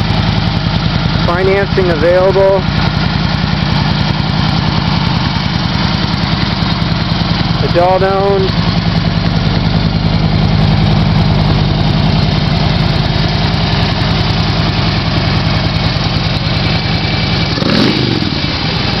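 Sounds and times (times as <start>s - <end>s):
motorcycle engine idling: 0.0s - 19.0s.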